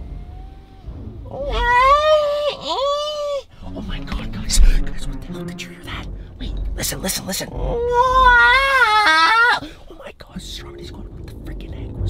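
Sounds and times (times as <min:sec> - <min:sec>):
man's eerie wailing scream: 0:01.3 - 0:03.5, 0:07.7 - 0:09.7.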